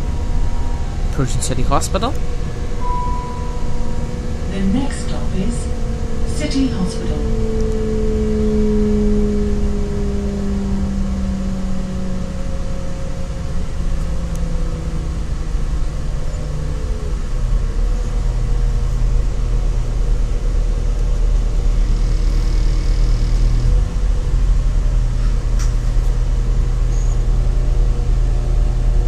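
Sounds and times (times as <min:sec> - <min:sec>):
low engine hum: 0:00.0 - 0:29.0
train engine whine: 0:00.0 - 0:29.0.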